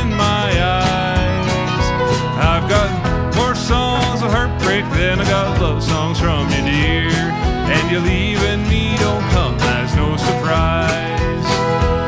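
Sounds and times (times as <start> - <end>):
country band with sliding guitar: 0.0 - 12.0.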